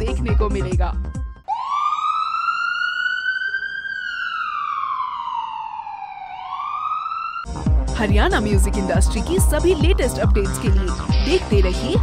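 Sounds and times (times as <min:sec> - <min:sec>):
wailing siren: 0:01.4 - 0:07.6.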